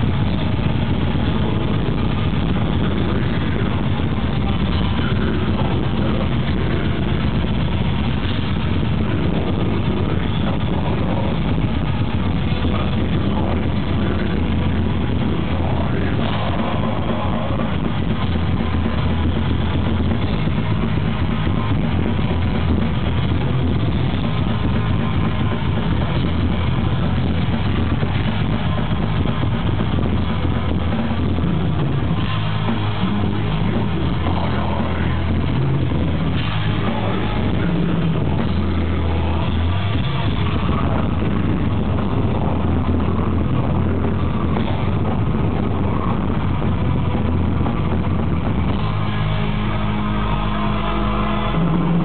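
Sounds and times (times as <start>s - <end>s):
bass guitar: 0.0s - 52.0s
distorted electric guitars: 0.0s - 52.0s
drums: 0.0s - 52.0s
metal band playing live: 0.0s - 52.0s.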